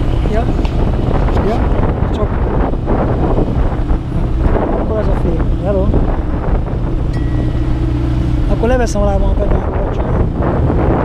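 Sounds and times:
aircraft engine running steadily: 0:00.0 - 0:11.0
wind buffeting microphone: 0:00.0 - 0:11.0.

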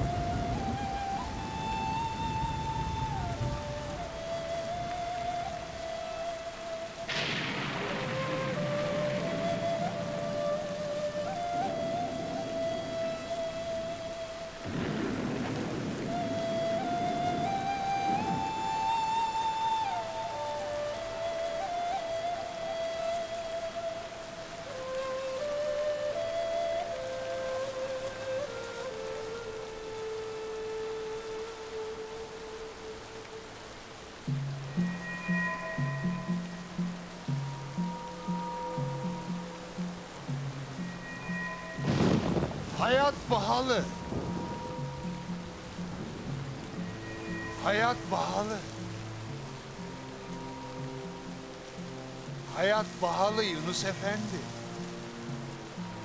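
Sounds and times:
thunder rumbling: 0:00.0 - 0:06.2, 0:07.0 - 0:22.0, 0:34.7 - 0:49.6
heavy rain: 0:00.0 - 0:56.0
slow film-score melody: 0:00.0 - 0:56.0.

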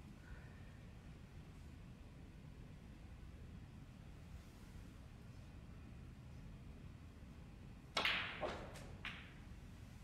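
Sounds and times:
ball dropping into pocket: 0:07.9 - 0:09.4
snooker balls clicking: 0:07.9 - 0:09.5.

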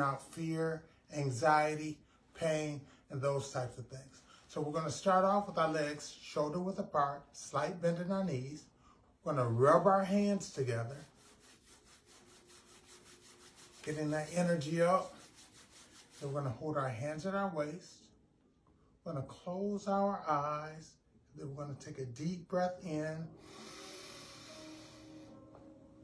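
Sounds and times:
quiet sustained background music: 0:04.5 - 0:26.0
palms rubbing together: 0:09.3 - 0:16.7
deep breath in: 0:23.4 - 0:25.4.

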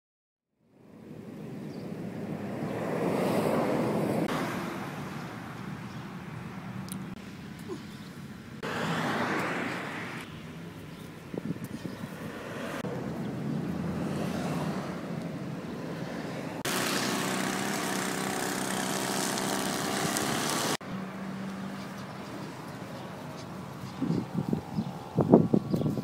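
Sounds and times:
passing vehicles engine drone: 0:02.0 - 0:07.2, 0:08.6 - 0:10.9, 0:12.3 - 0:25.3.

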